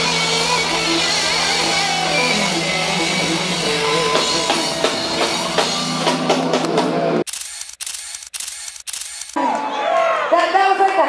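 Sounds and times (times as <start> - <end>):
live rock music: 0.0 - 7.1
camera shutter clicks: 7.3 - 9.4.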